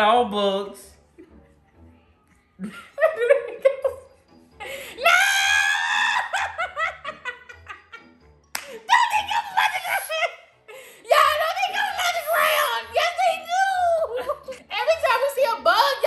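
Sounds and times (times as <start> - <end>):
man and woman laughing: 2.6 - 8.2.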